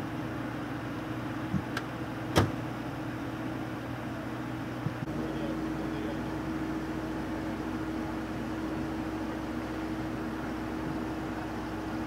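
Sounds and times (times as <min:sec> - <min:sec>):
street background noise: 0:00.0 - 0:12.0
vehicle engine idling: 0:00.0 - 0:12.0.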